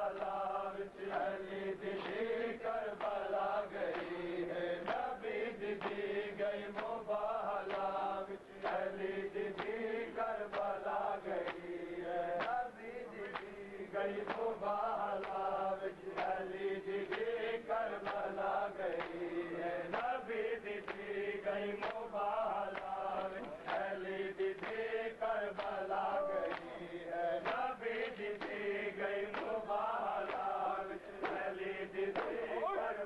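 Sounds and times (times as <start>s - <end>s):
men chanting in unison: 0.0s - 33.0s
hands slapping chests: 3.0s - 4.2s, 4.8s - 5.2s, 11.4s - 11.7s, 12.3s - 13.6s, 14.2s - 14.6s, 16.2s - 17.4s, 18.0s - 19.3s, 20.8s - 21.2s, 21.8s - 24.8s, 25.5s - 26.8s, 27.4s - 32.7s.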